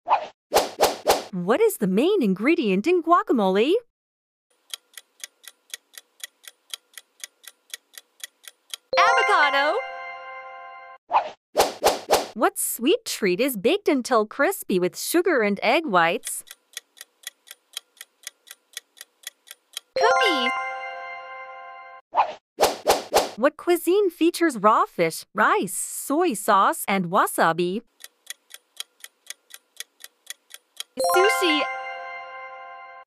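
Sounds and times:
clock ticking: 4.6s - 9.5s, 16.0s - 20.5s, 27.9s - 31.6s.

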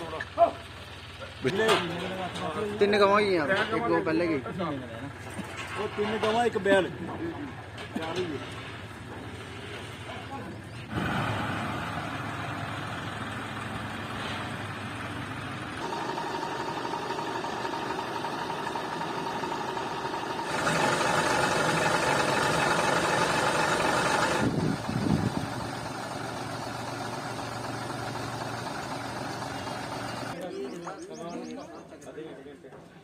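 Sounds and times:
truck diesel engine idling: 0.0s - 1.6s, 11.0s - 30.4s.

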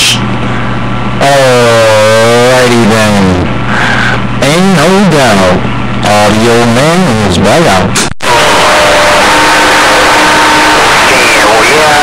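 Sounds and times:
radio static hiss: 8.0s - 12.0s.

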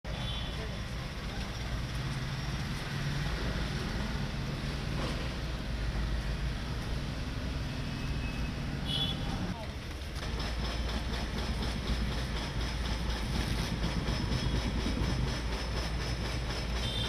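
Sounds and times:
outdoor background noise: 0.0s - 17.0s
vehicle engine rumble: 0.1s - 17.0s.

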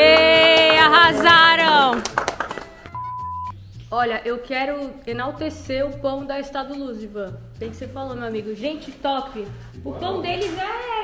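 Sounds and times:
electronic beep: 3.0s - 4.6s.

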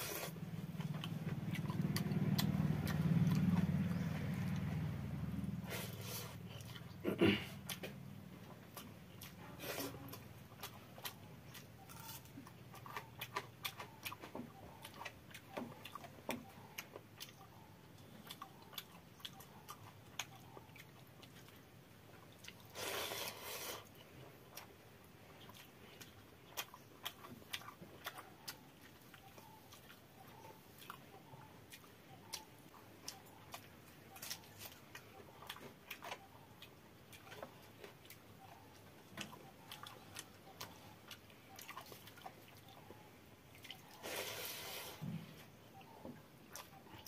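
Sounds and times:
person chewing and smacking: 0.0s - 44.4s, 45.6s - 47.0s
wet slurping burst: 44.0s - 45.1s.

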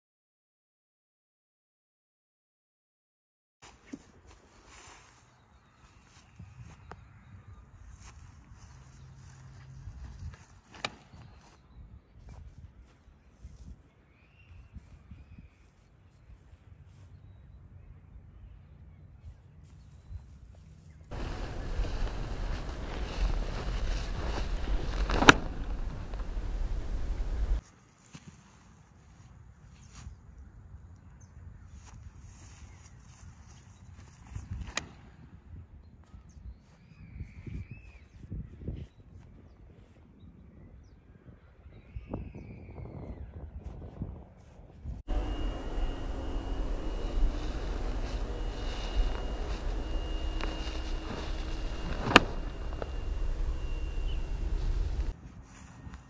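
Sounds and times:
footsteps on dry grass: 3.6s - 6.9s, 7.8s - 13.9s, 19.3s - 30.2s, 43.7s - 56.0s
sharp crack: 10.7s - 11.2s, 21.1s - 27.6s, 45.1s - 55.2s
loud rushing noise: 21.1s - 27.6s, 45.1s - 55.2s
disc throw: 21.2s - 28.8s, 45.1s - 56.0s.

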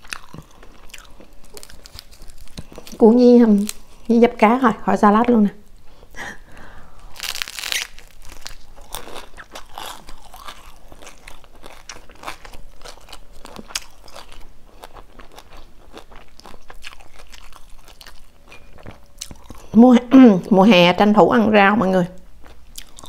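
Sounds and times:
crunchy biting and chewing: 0.0s - 4.0s, 7.0s - 19.8s, 22.4s - 23.0s.

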